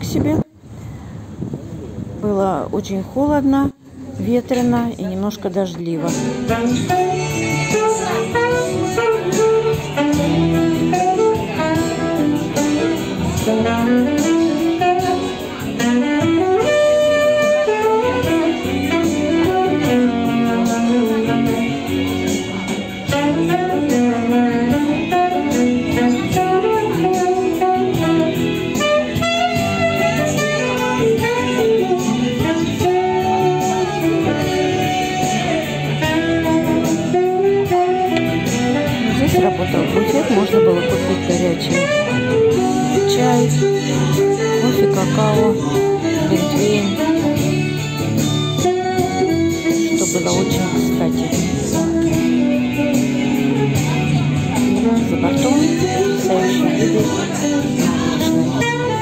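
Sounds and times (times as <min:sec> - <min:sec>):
musical accompaniment: 0:04.6 - 0:59.0
saxophone melody: 0:06.0 - 0:59.0.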